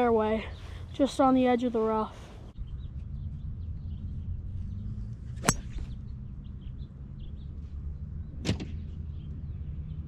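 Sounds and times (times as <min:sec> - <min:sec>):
golf club striking ball: 0:05.4 - 0:05.9.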